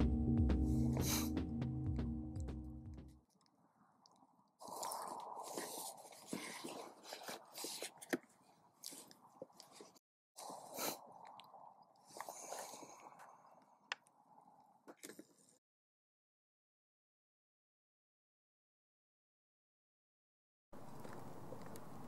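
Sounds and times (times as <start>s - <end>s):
faint rustling and crunching: 3.3s - 15.6s.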